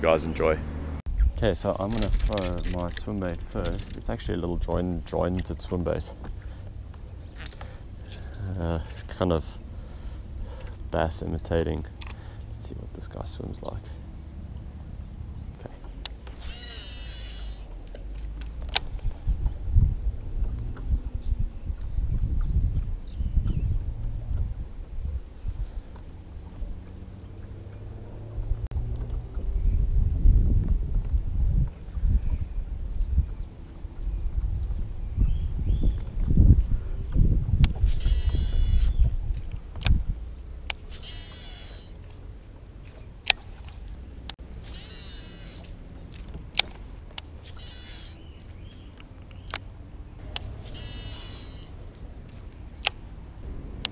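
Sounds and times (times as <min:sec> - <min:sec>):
wind rumbling on microphone: 0:00.0 - 0:53.9
fishing reel being cranked: 0:01.8 - 0:04.1, 0:16.3 - 0:17.7, 0:37.8 - 0:39.0, 0:40.7 - 0:42.0, 0:44.6 - 0:45.7, 0:47.4 - 0:48.2, 0:50.6 - 0:51.8
sharp clicks: 0:01.8 - 0:04.2, 0:43.2 - 0:51.7.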